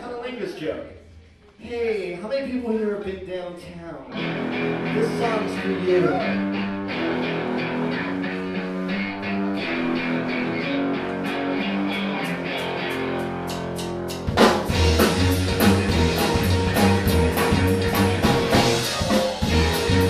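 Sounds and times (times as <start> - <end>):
electric guitar: 4.1 - 20.0
rock band with drums: 4.1 - 20.0.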